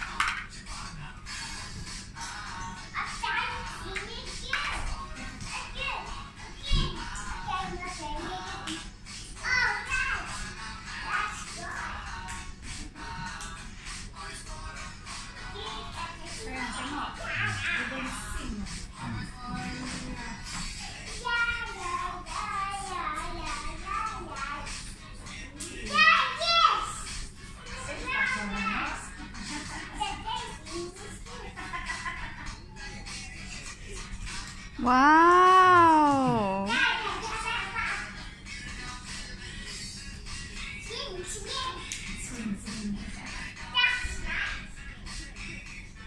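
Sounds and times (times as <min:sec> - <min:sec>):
child singing: 0:00.0 - 0:31.8, 0:32.8 - 0:46.0
children playing: 0:03.0 - 0:08.7, 0:15.6 - 0:18.2, 0:27.6 - 0:33.6, 0:34.9 - 0:38.4
child shouting: 0:34.8 - 0:38.0.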